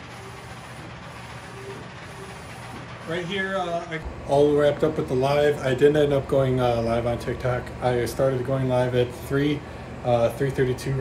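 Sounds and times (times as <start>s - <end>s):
printer humming and whirring: 0.0s - 11.0s.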